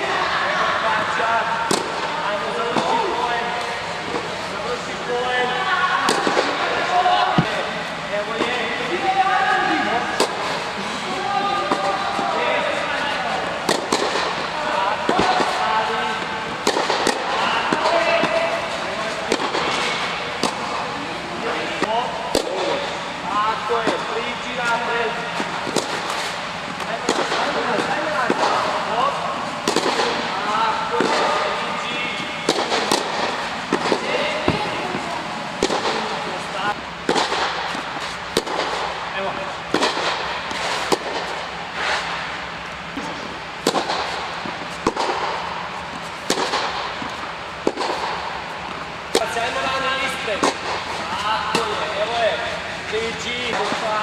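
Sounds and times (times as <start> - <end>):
voices calling and talking: 0.0 - 54.0
tennis balls struck by rackets: 1.0 - 4.3, 6.0 - 8.8, 9.6 - 10.8, 11.6 - 23.1, 23.7 - 54.0.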